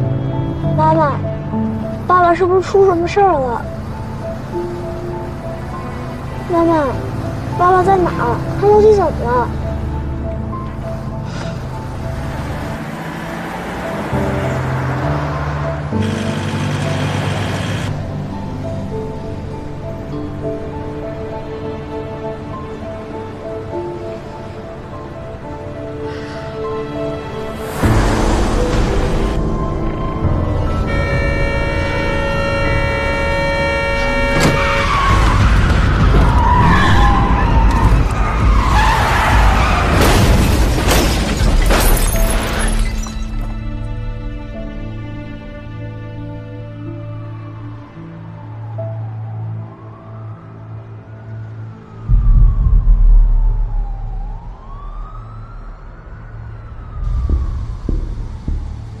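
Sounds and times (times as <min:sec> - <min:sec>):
tense music chords: 0:00.0 - 0:42.3, 0:43.3 - 0:59.0
heavy engine rumble: 0:01.4 - 0:19.4
emergency vehicle siren wailing: 0:29.3 - 0:40.0, 0:47.2 - 0:58.7
car tyres squealing: 0:30.9 - 0:40.5
deep low rumble: 0:52.0 - 0:59.0
low thuds: 0:52.1 - 0:55.0, 0:56.8 - 0:59.0.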